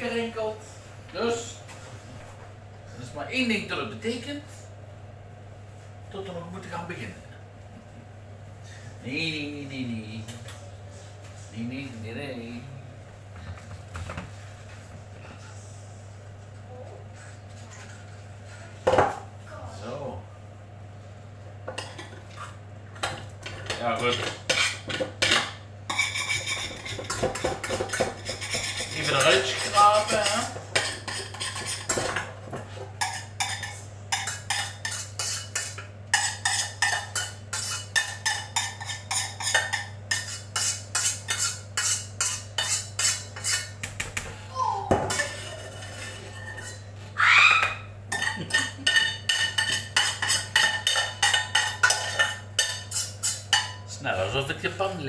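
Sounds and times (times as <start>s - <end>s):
metal pot and utensils clattering: 23.0s - 43.6s, 45.0s - 46.8s, 48.1s - 53.8s.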